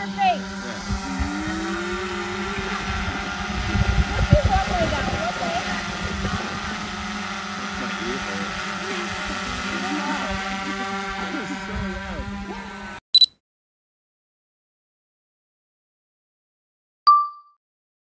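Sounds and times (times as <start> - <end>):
steady hum: 0.0 - 12.8
faint voices: 0.0 - 12.9.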